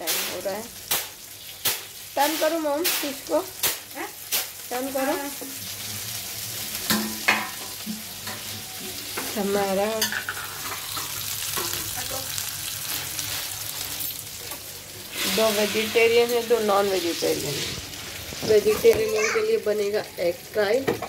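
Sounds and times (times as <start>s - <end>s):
food sizzling in hot oil: 0.0s - 21.0s.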